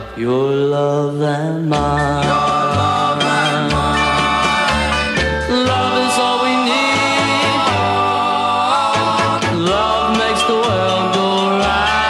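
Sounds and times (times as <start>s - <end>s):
men singing harmony note: 0.1s - 12.0s
doo-wop band with bass: 1.7s - 12.0s.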